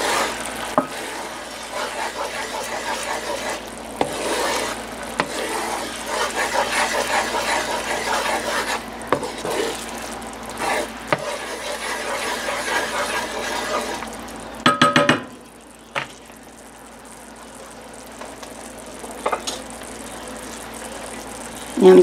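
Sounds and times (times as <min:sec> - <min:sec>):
spatula scraping pan: 0:00.0 - 0:09.9, 0:10.6 - 0:14.1
sauce simmering and bubbling: 0:00.0 - 0:22.0.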